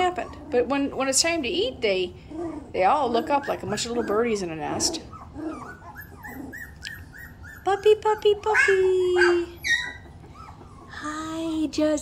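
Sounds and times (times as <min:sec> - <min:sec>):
low puppy whines: 0:00.0 - 0:01.0, 0:02.2 - 0:11.2
puppies whimpering: 0:00.0 - 0:11.5.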